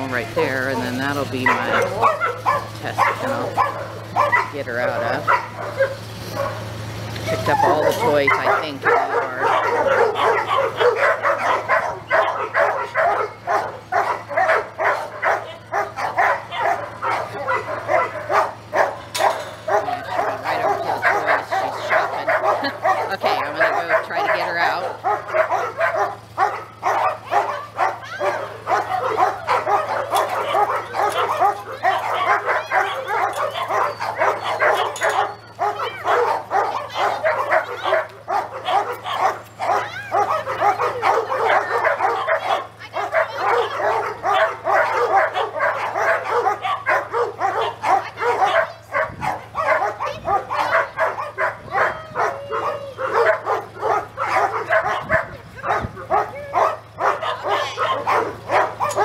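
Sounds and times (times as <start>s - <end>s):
dogs barking and yipping: 0.0s - 59.0s.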